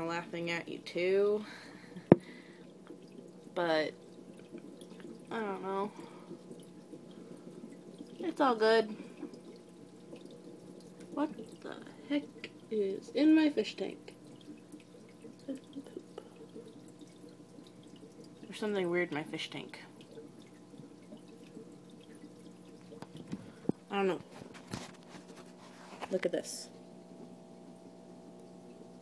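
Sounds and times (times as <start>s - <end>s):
low steady hum: 0.0s - 29.0s
water trickling from aquarium filter: 0.0s - 29.0s.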